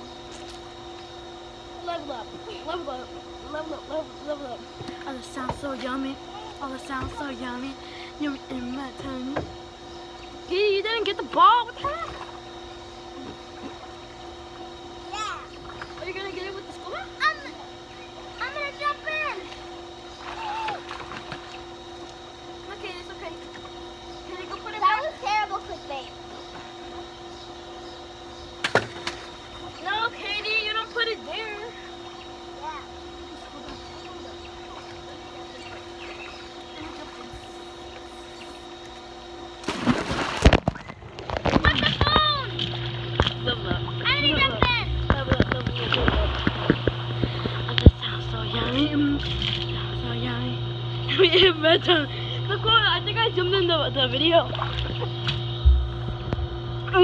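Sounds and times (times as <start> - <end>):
water splashing in a pool: 19.3 - 22.2, 33.4 - 37.8, 39.6 - 44.2, 45.2 - 48.0, 54.3 - 55.3
loud splash of someone jumping in: 39.6 - 40.9.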